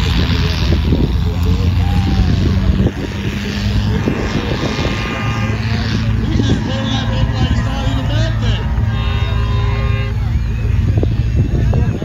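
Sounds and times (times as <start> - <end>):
crowd voices: 0.0 - 12.0
tow truck engine rumbling: 0.0 - 12.0.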